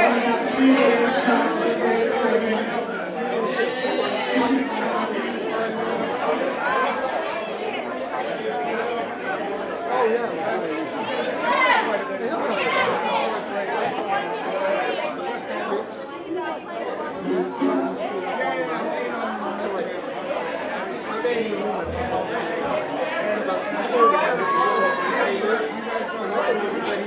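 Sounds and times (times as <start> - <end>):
crowd chatter: 0.0 - 27.0.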